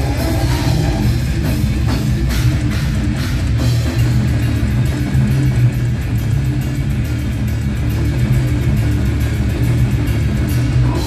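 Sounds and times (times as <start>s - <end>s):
distorted electric guitars and bass: 0.0s - 11.0s
fast drumming: 0.0s - 11.0s.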